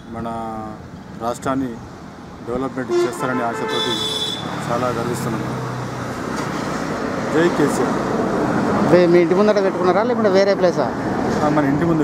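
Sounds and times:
man speaking: 0:02.5 - 0:05.6.

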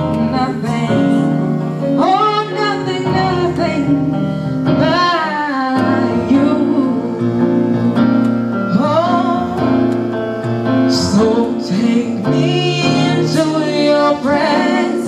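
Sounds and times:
woman singing gospel: 0:00.0 - 0:09.9, 0:10.9 - 0:15.0
held keyboard chords: 0:00.0 - 0:15.0.

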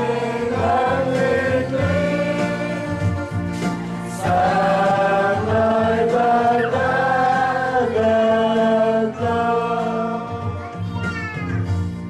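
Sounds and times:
church choir singing a hymn: 0:00.0 - 0:10.5
held instrumental accompaniment: 0:00.0 - 0:12.0.

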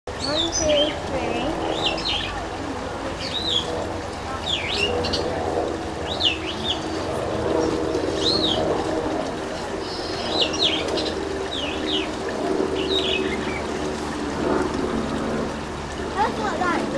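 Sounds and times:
birds chirping: 0:00.1 - 0:14.7
steady low hum: 0:00.1 - 0:16.9.

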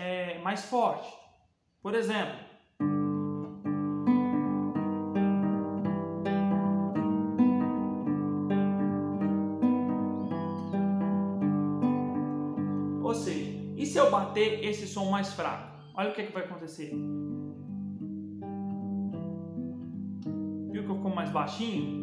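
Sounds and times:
classical guitar chords: 0:02.8 - 0:16.0, 0:16.7 - 0:22.0.

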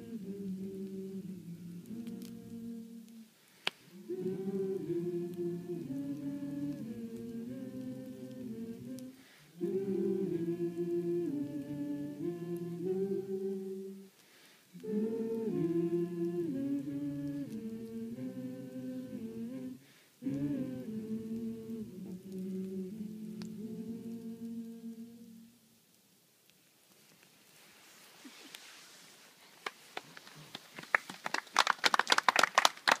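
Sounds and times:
voices singing in harmony: 0:00.0 - 0:25.8
wood fire crackling: 0:00.0 - 0:33.0.

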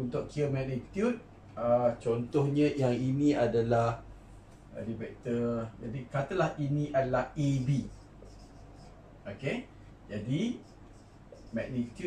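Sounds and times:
marker pen writing on whiteboard: 0:07.3 - 0:09.6, 0:10.2 - 0:12.0.

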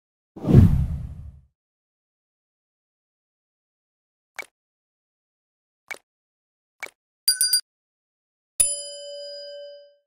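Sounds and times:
whoosh sound effect: 0:00.4 - 0:01.4.

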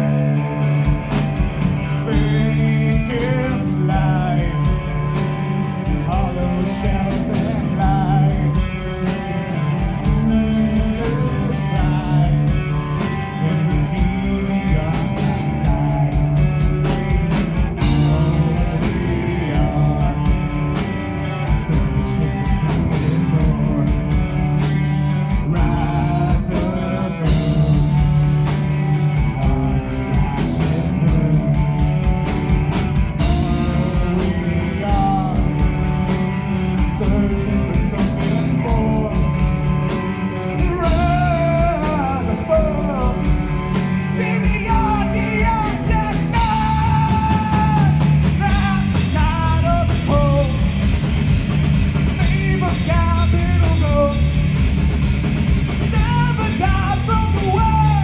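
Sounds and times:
bass guitar: 0:00.0 - 0:58.0
distorted electric guitar: 0:00.0 - 0:58.0
drum kit: 0:00.0 - 0:58.0
man singing lead vocal: 0:01.9 - 0:17.2, 0:17.8 - 0:32.6, 0:33.2 - 0:50.9, 0:52.1 - 0:54.6, 0:55.7 - 0:58.0.

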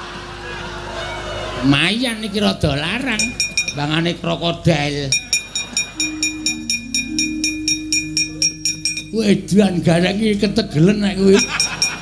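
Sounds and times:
held low notes: 0:02.9 - 0:12.0
rapid metallic clanking: 0:03.0 - 0:04.0, 0:11.4 - 0:12.0.

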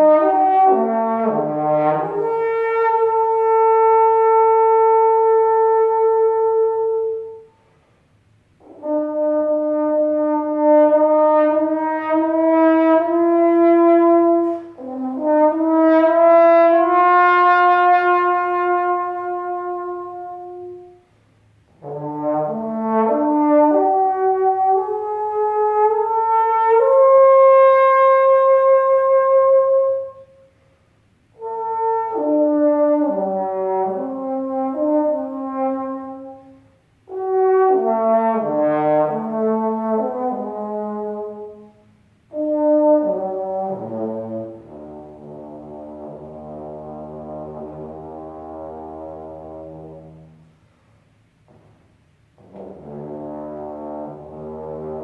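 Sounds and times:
solo trombone melody: 0:00.0 - 0:55.0.

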